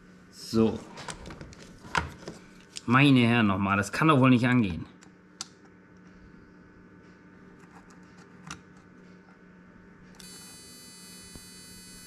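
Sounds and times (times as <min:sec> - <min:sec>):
high-pitched electronic whine: 0:10.2 - 0:12.0.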